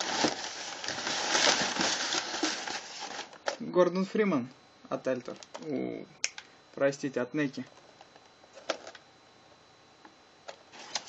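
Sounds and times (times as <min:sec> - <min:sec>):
packing paper rustling: 0:00.0 - 0:03.6, 0:10.7 - 0:11.0.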